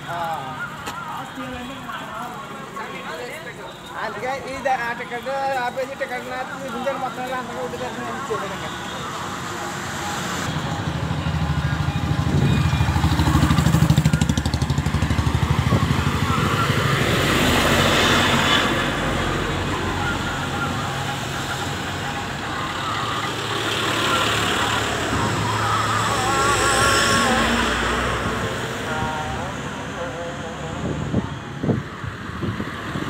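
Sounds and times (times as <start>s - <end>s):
vehicles driving past: 0.0s - 33.0s.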